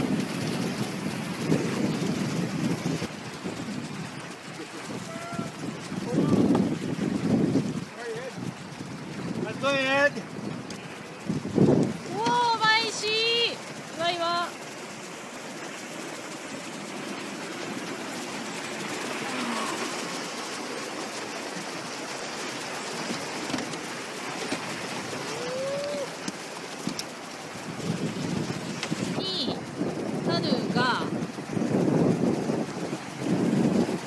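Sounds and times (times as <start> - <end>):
whitewater rushing: 1.3 - 34.0.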